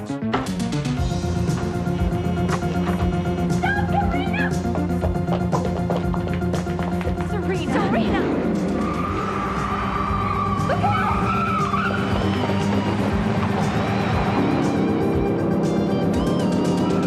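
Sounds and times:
background music: 0.0 - 17.0
car tyres squealing: 1.3 - 4.2, 8.6 - 17.0.

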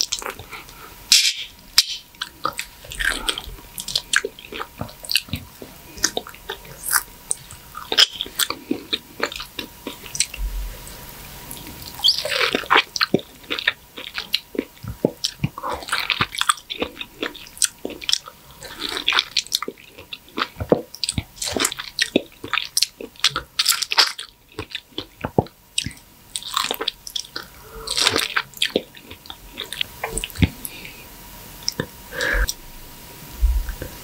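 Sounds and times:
biting and chewing mango: 11.5 - 30.8.

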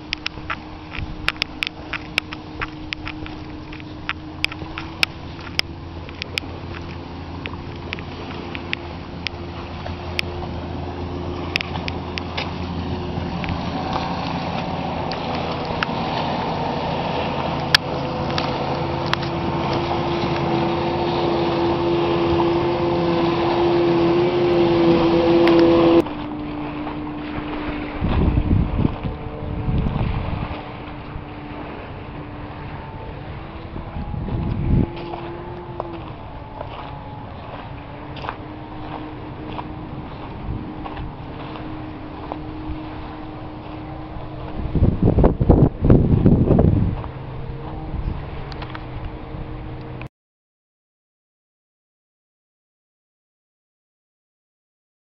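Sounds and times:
wind buffeting microphone: 0.0 - 50.0
faint steady drone: 0.0 - 50.1
motor drone: 0.0 - 50.1.

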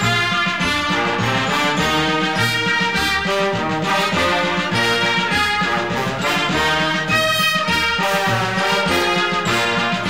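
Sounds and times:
march beat in the bass: 0.0 - 10.0
trumpets and trombones: 0.0 - 10.0.

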